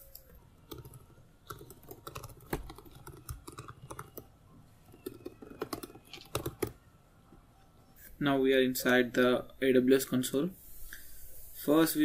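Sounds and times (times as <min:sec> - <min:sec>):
typing on computer keyboard: 0:00.1 - 0:04.3, 0:04.9 - 0:06.8.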